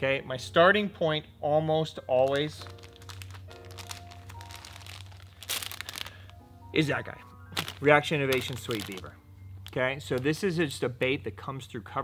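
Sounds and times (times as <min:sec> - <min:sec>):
quiet background music: 0:00.0 - 0:12.0
plastic bag crinkling: 0:02.2 - 0:06.4, 0:07.5 - 0:10.4.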